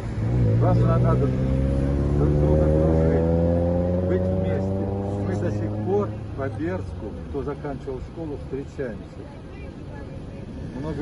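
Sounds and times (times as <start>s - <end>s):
faint voices: 0.8s - 11.0s.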